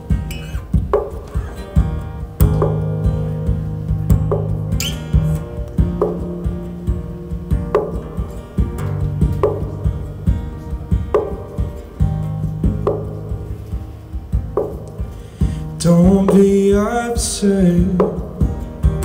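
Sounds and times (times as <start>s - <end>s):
acoustic guitar strumming chords: 0.0s - 19.0s.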